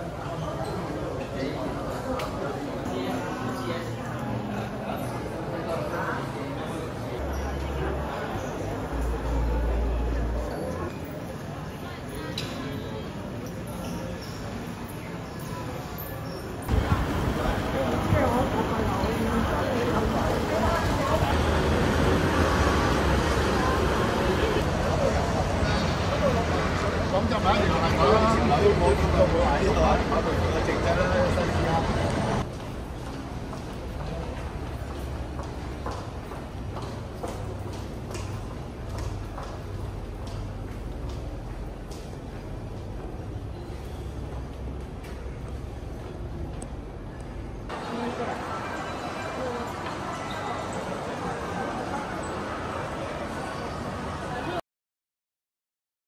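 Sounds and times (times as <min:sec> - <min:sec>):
passers-by talking: 0:00.0 - 0:32.6, 0:44.8 - 0:54.6
murmur of crowd chatter: 0:00.0 - 0:54.6
low traffic rumble: 0:16.7 - 0:54.4.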